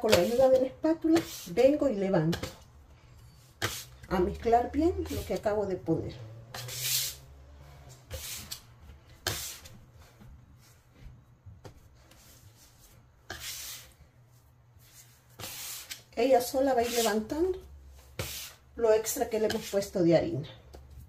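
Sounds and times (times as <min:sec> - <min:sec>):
spatula scraping dough on countertop: 0:00.0 - 0:10.2, 0:12.1 - 0:14.0, 0:14.8 - 0:19.9.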